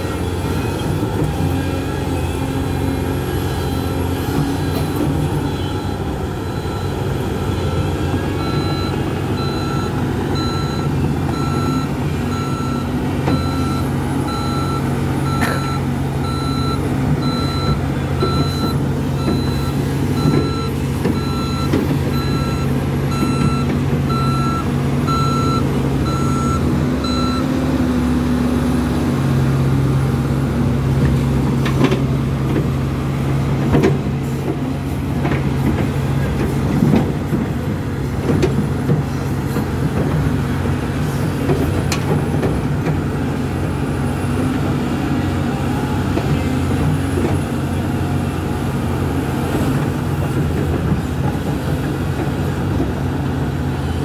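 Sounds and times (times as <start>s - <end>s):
heavy diesel machinery running: 0.0s - 54.0s
reversing alarm beeping: 4.9s - 27.6s.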